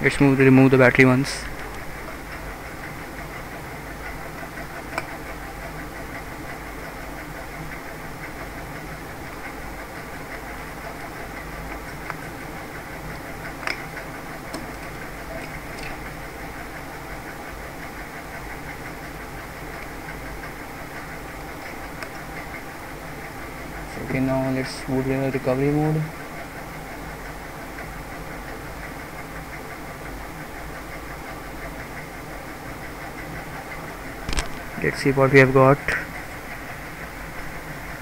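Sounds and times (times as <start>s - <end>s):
steady mechanical hum: 0.0s - 38.0s.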